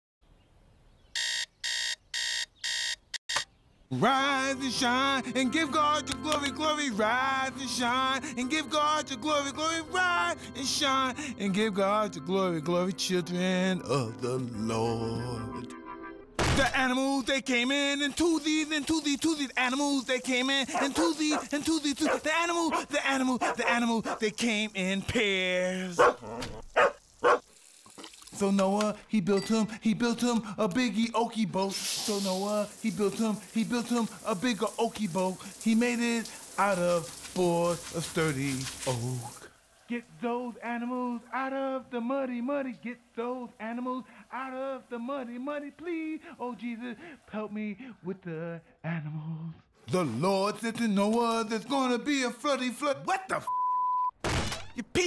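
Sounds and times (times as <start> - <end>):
digital alarm clock beeping: 1.2 - 3.4
dog barking: 20.7 - 24.2, 26.0 - 27.4.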